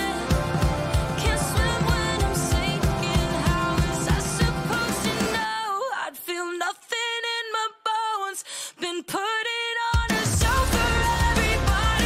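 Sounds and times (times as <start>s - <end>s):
pop-rock band with drums: 0.0s - 5.5s, 10.0s - 12.0s
woman singing: 0.0s - 12.0s.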